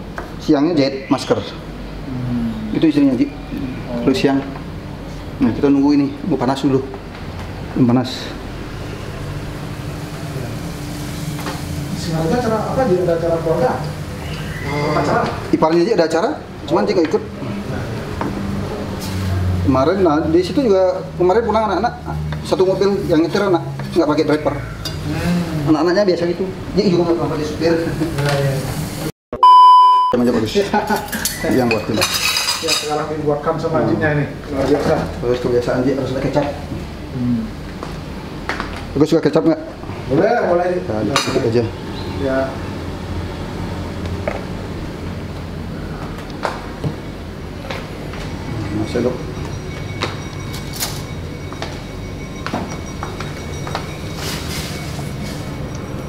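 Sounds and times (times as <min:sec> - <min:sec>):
steady low hum: 0:00.0 - 0:28.1, 0:33.1 - 0:56.0
high-pitched test tone beep: 0:29.4 - 0:30.2, 0:48.7 - 0:56.0.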